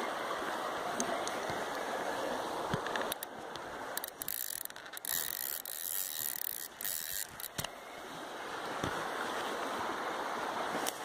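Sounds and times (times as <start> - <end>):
river water rushing: 0.0 - 11.0
fishing reel clicking: 4.0 - 7.7.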